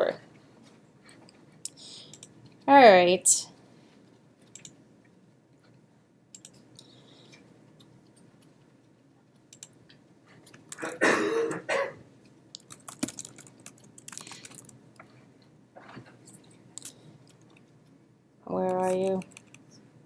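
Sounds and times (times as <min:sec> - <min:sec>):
laptop keyboard typing: 0:02.0 - 0:02.3, 0:04.4 - 0:04.8, 0:06.4 - 0:06.6, 0:09.4 - 0:09.7, 0:12.6 - 0:14.8, 0:18.7 - 0:19.7
person coughing: 0:10.8 - 0:12.0.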